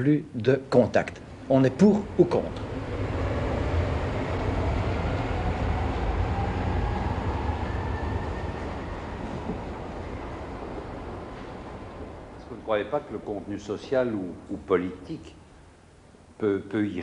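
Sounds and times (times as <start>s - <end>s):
train rumble: 1.1s - 14.7s.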